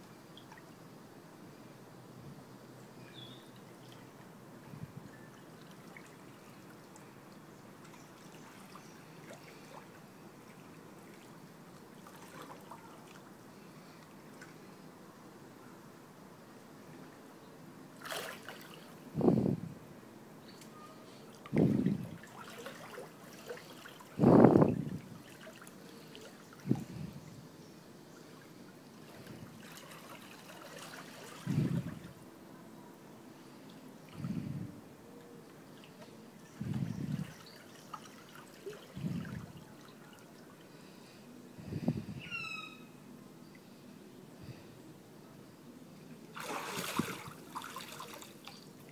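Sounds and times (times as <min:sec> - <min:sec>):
pool water sloshing and lapping: 0:00.0 - 0:00.9, 0:03.1 - 0:14.9, 0:17.9 - 0:19.2, 0:20.6 - 0:27.1, 0:28.1 - 0:32.4, 0:35.4 - 0:41.4, 0:46.2 - 0:48.9.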